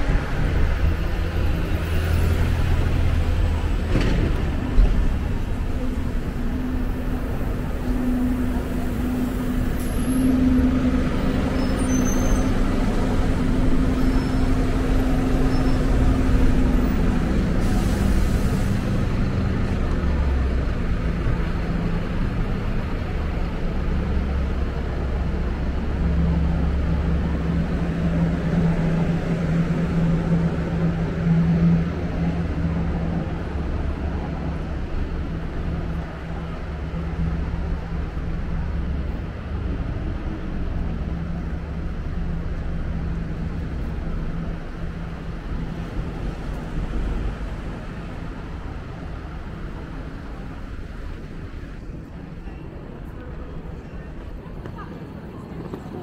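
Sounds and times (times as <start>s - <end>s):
heavy vehicle engines rumbling: 0.0s - 56.0s.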